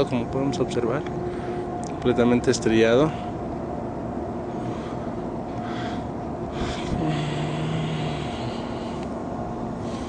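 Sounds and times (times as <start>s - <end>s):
low drone: 0.0s - 10.0s
steady mechanical hum: 0.0s - 10.0s.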